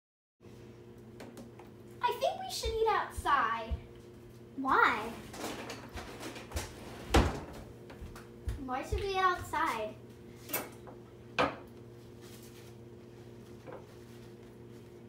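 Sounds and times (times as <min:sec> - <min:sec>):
steady low hum: 0:00.4 - 0:15.0
kitchen things knocking and clattering: 0:11.4 - 0:11.7.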